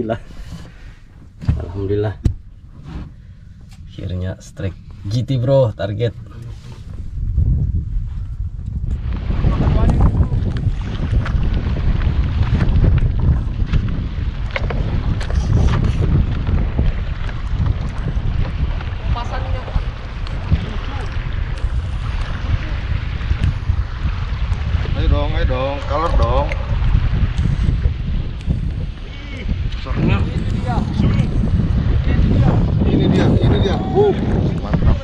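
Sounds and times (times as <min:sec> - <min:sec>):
sea: 0:00.0 - 0:35.0
wind buffeting microphone: 0:00.0 - 0:35.0.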